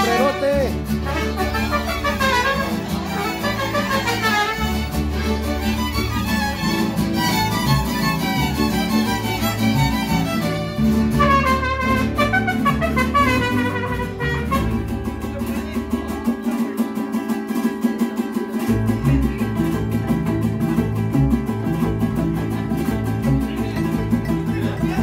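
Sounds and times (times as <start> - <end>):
violins and trumpets melody: 0.0 - 15.3
bass guitar: 0.0 - 25.0
strummed guitars: 0.0 - 25.0.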